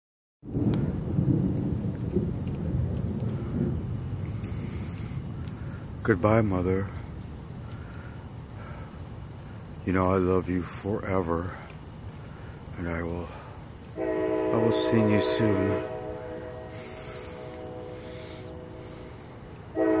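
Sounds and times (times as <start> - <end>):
night insects droning: 0.4 - 20.0
constant low rumble: 0.5 - 19.8
crickets trilling: 0.5 - 20.0
low horn-like chord: 14.0 - 20.0.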